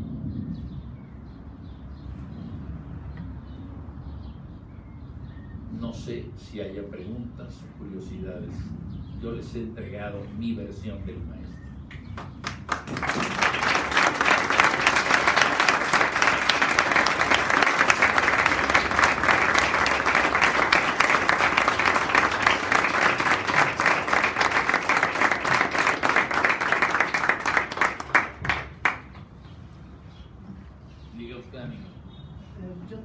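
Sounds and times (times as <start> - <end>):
audience applauding: 12.0 - 29.3.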